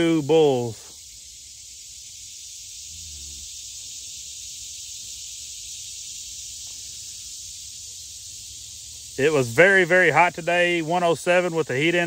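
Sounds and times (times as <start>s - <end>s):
insect chorus drone: 0.0s - 12.0s.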